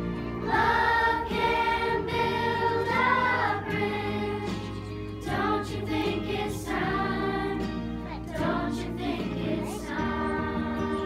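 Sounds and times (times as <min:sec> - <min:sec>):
children's choir singing: 0:00.4 - 0:11.0.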